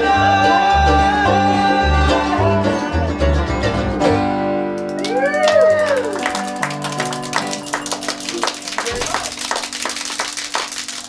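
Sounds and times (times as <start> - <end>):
bluegrass band chord ringing: 0.0 - 4.8
people clapping: 4.7 - 11.0.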